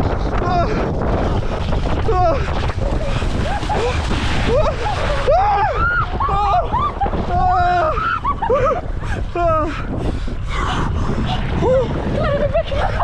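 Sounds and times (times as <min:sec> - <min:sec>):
splashing through water: 0:00.0 - 0:08.8
wind rumble on microphone: 0:00.0 - 0:13.0
people shrieking and yelping: 0:02.8 - 0:09.2.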